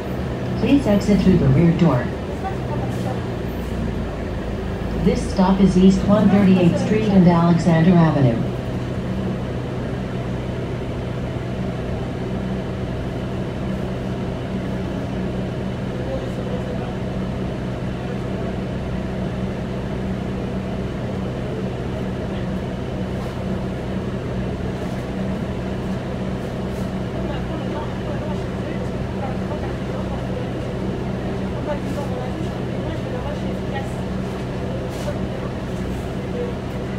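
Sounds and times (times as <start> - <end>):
bus engine idling: 0.0 - 36.9.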